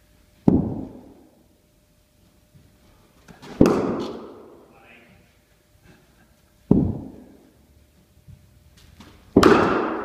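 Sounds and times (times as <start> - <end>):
cricket bat striking ball: 3.6 - 4.6, 6.7 - 7.3, 9.3 - 10.0.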